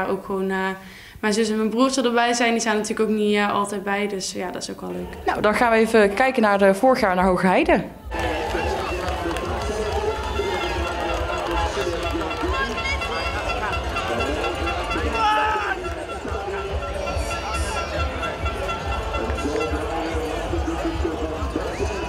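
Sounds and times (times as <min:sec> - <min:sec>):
people talking: 0:00.0 - 0:22.0
music over loudspeakers: 0:08.1 - 0:22.0
voice over loudspeakers: 0:08.1 - 0:22.0.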